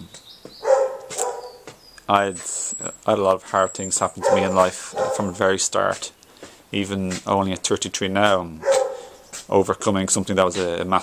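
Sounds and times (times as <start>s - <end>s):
faint high chirps: 0.1s - 5.1s.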